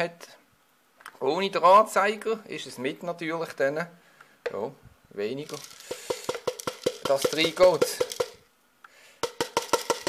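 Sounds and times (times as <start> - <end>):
grains clicking into plant pot: 5.4 - 8.4.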